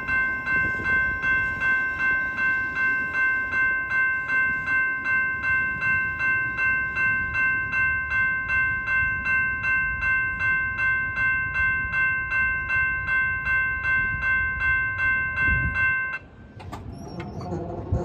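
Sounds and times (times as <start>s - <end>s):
crossing warning bell ringing: 0.0s - 18.0s
train rumbling past: 0.0s - 18.0s.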